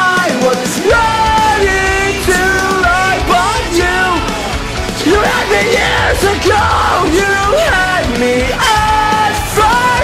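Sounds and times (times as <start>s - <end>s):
man singing in yelling voice: 0.0s - 10.0s
metalcore backing track: 0.0s - 10.0s.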